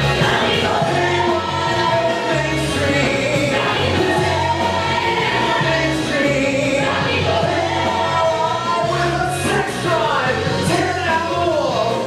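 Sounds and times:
band accompaniment: 0.0s - 12.0s.

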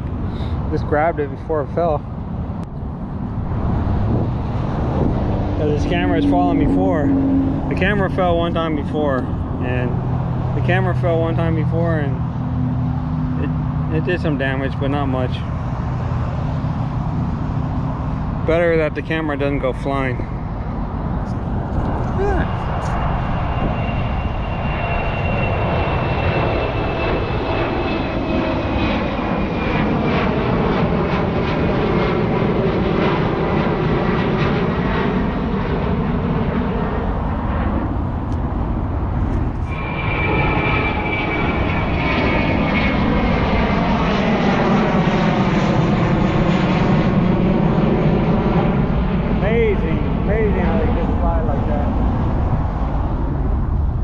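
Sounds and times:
jet engines rumbling and whining: 0.0s - 54.0s.

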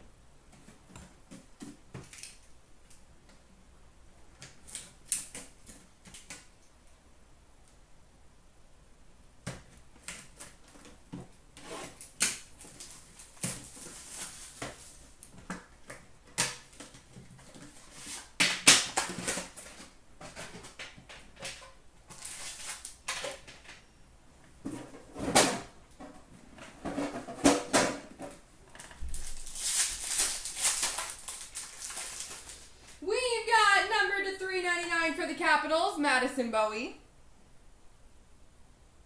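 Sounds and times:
wrappers crinkling: 11.6s - 15.3s, 22.1s - 23.1s, 28.8s - 33.0s
card packs torn open: 22.1s - 23.0s, 29.0s - 33.0s
person speaking: 32.8s - 37.1s.

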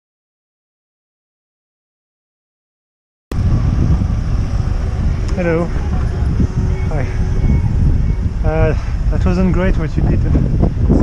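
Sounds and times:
road traffic rumble: 3.3s - 11.0s.

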